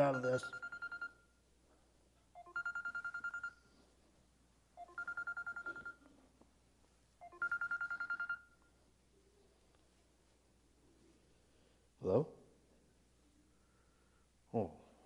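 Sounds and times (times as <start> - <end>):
mobile phone trilling ring: 0.0 - 1.3, 2.4 - 3.8, 4.8 - 6.1, 7.2 - 8.7.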